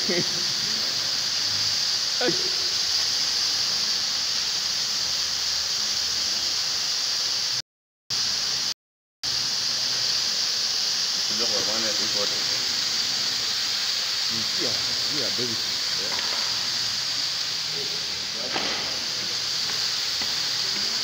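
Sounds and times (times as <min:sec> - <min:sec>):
fire extinguishers hissing: 0:00.0 - 0:21.0.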